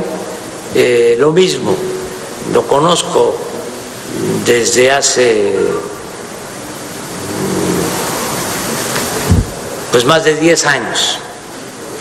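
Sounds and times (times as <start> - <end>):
rushing hiss: 2.0 - 10.4.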